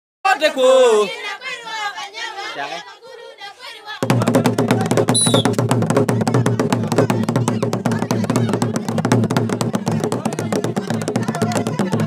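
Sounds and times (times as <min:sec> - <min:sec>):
people talking: 0:00.3 - 0:01.3
fast percussion dance music: 0:04.0 - 0:12.0.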